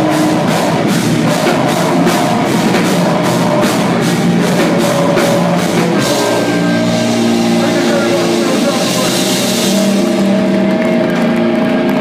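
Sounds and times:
distorted electric guitars droning: 0.0 - 12.0.

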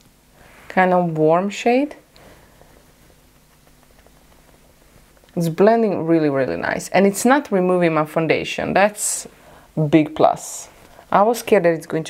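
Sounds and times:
faint steady hum: 0.0 - 12.0
low even hiss: 0.0 - 12.0.

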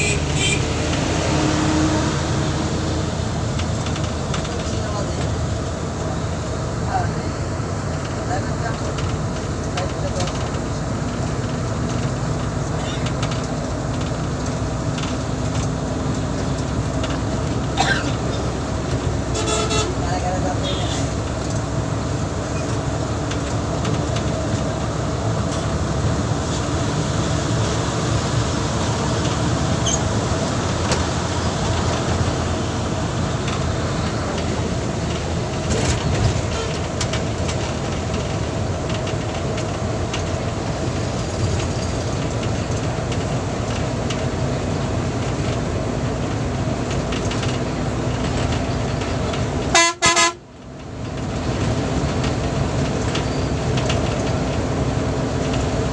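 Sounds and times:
vehicle horns tooting: 0.0 - 0.7, 19.3 - 20.0, 49.7 - 50.4
bus engine and road noise: 0.0 - 55.9.

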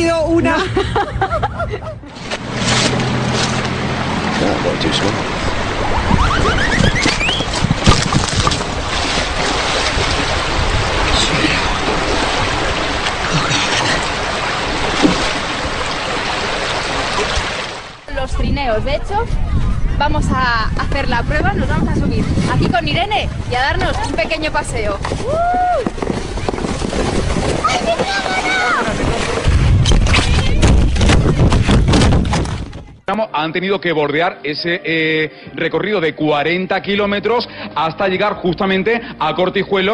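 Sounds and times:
creek flowing: 2.1 - 18.1
people shrieking: 6.0 - 7.5
sled scraping on snow: 24.0 - 32.7
sled tumbling into snow: 24.8 - 32.8.

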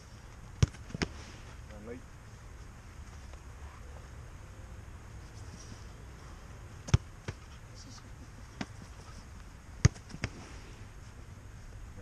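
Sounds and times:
football being struck: 0.6 - 1.2, 6.8 - 7.5, 9.8 - 10.4.

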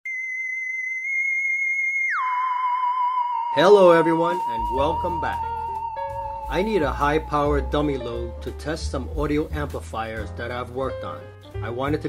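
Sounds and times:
high-pitched electronic test tone: 0.1 - 8.4.

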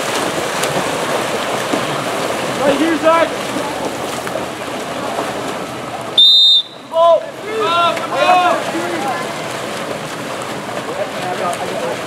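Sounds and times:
splashing in a pool: 0.0 - 12.0
referee's whistle blast: 6.2 - 7.0.

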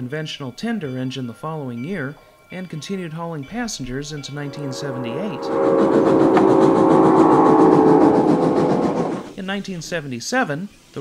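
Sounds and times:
moving train noise: 3.5 - 9.4
steam locomotive whistle: 4.1 - 9.3.

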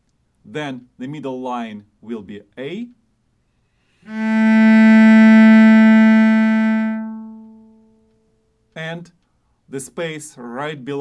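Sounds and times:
cello bowing sustained note: 4.0 - 8.2.

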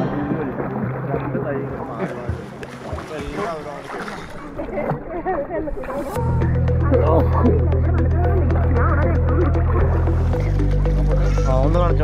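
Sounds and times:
people talking and calling: 0.0 - 12.0
water sloshing: 0.0 - 12.0.

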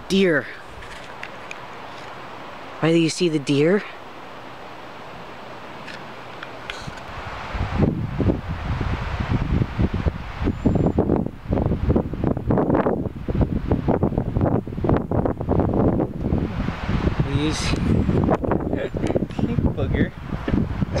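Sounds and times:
steady hiss: 0.0 - 21.0
wind buffeting microphone: 6.5 - 21.0.

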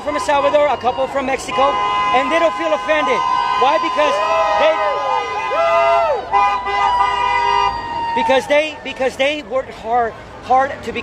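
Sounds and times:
low traffic rumble: 0.0 - 11.0
vehicle horn long blast: 1.4 - 3.9, 6.3 - 7.7.

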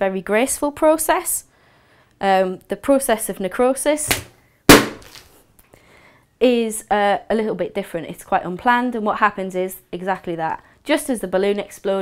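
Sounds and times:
balloon bursting bang: 4.1 - 5.3
balloon squeezed by hand: 4.1 - 5.3.

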